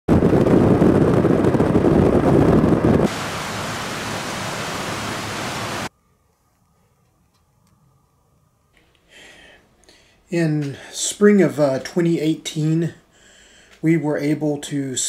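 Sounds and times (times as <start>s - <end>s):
wind buffeting microphone: 0.1s - 5.9s
water rushing over rocks: 3.1s - 5.9s.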